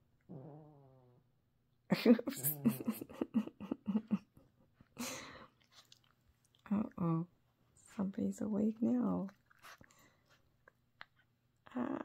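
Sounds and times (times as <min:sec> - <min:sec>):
puppy groaning: 0:00.3 - 0:01.3.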